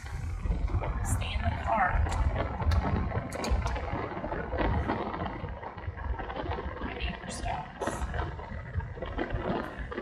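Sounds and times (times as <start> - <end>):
road and wind noise in car: 0.0 - 10.0.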